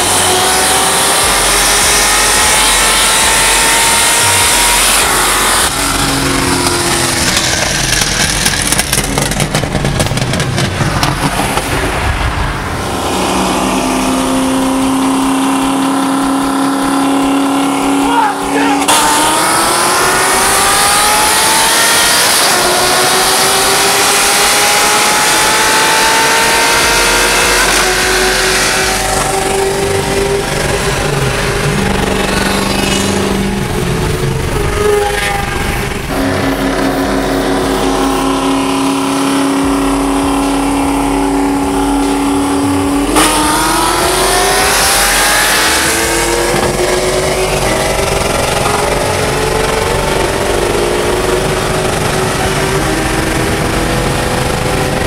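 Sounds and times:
car engines accelerating: 0.0s - 55.0s.

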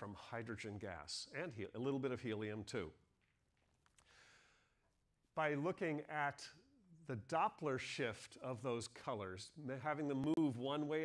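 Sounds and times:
faint breath: 4.0s - 4.9s.

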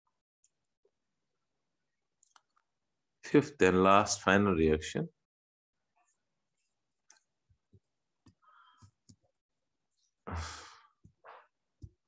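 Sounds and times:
man sighing into microphone: 10.3s - 11.0s.

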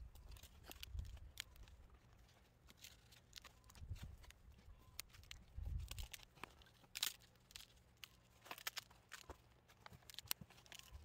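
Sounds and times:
composite shell cracking and clicking: 2.6s - 11.0s.

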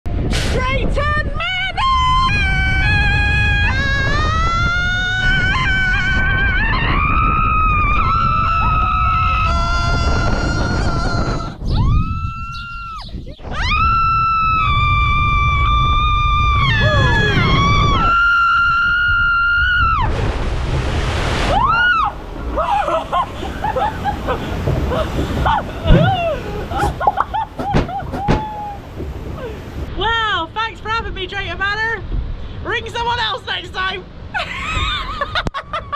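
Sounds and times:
ride rumble and wind: 0.0s - 35.9s
woman screaming: 6.0s - 20.1s, 21.5s - 24.3s, 24.9s - 29.6s
water splashing: 20.0s - 30.0s.

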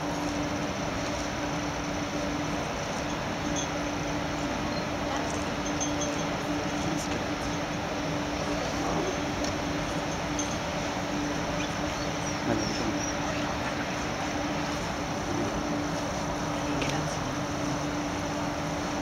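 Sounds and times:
blower fans humming: 0.0s - 19.0s.

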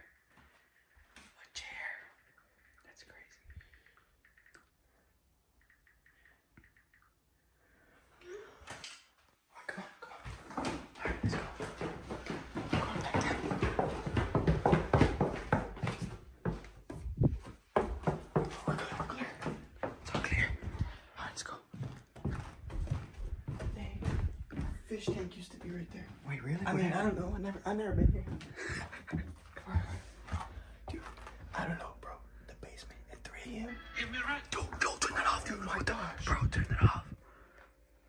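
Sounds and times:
footsteps on wooden stairs: 10.2s - 21.0s, 21.7s - 31.8s.

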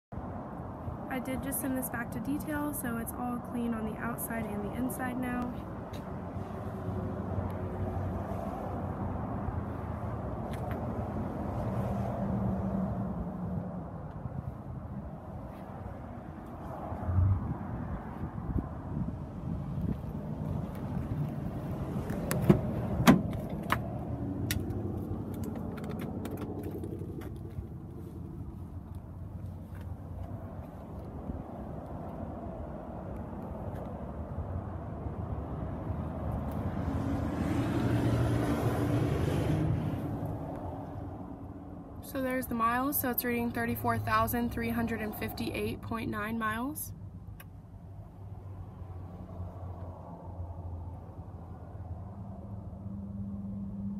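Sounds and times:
outdoor background rumble: 0.1s - 53.9s
car door clicks: 22.0s - 23.9s
thump: 22.4s - 23.4s.

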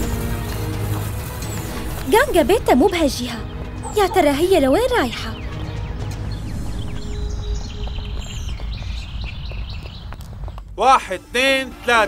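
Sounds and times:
birds chirping: 1.3s - 10.8s.

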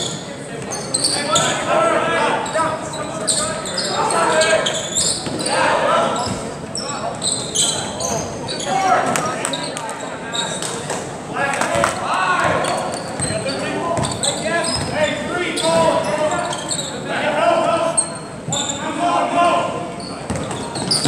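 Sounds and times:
voices and shouts echoing: 0.0s - 21.0s.

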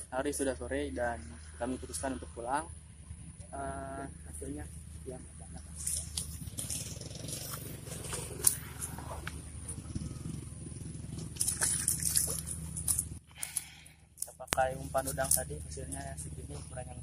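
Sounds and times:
low steady hum: 0.0s - 17.0s
grass rustling: 4.2s - 17.0s.

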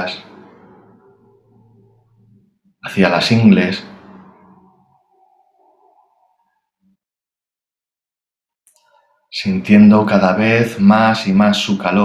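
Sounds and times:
faint tone: 0.0s - 2.7s, 3.3s - 7.0s.

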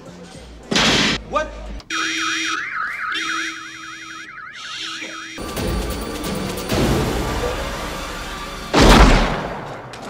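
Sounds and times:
car alarm warbling wail: 1.9s - 5.9s.

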